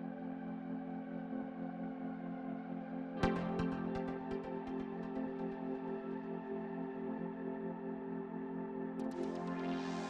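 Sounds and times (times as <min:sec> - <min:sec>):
sustained ambient chord: 0:00.0 - 0:10.0.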